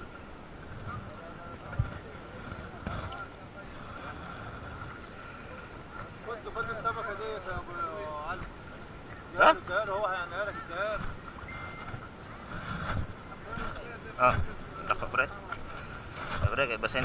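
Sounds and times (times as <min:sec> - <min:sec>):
faint steady hum: 0:00.0 - 0:17.0
wind noise on microphone: 0:10.5 - 0:17.0.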